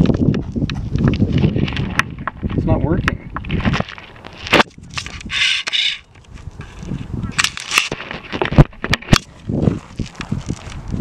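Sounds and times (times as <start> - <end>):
camera handling noise: 3.4 - 10.9
rustling: 3.4 - 11.0.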